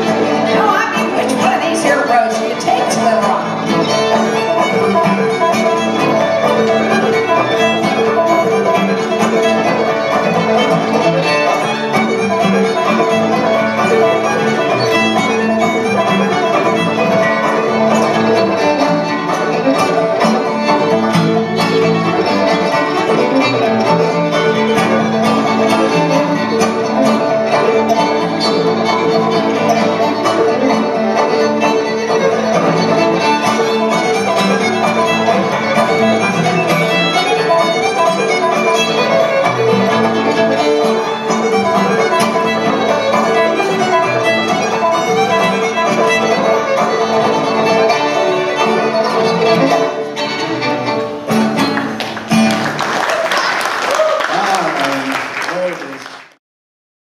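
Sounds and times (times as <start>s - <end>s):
acoustic guitar: 0.0s - 53.8s
banjos: 0.0s - 54.1s
fiddle: 0.0s - 56.4s.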